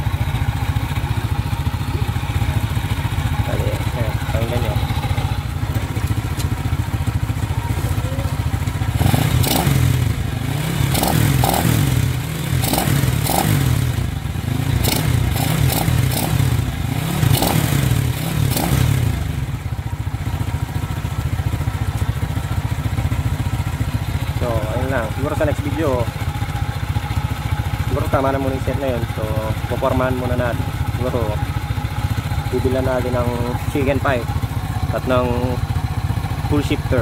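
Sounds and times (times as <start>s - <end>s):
motorcycle engine idling and revving: 0.0s - 37.0s.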